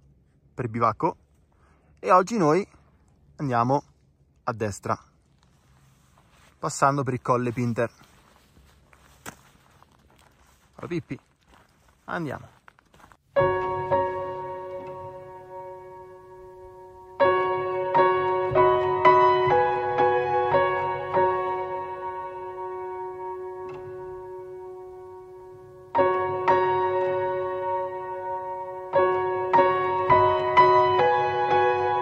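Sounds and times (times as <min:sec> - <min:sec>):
footsteps on stony scree: 0:05.2 - 0:13.8
piano held chord: 0:13.4 - 0:32.0
soft piano note: 0:13.4 - 0:32.0.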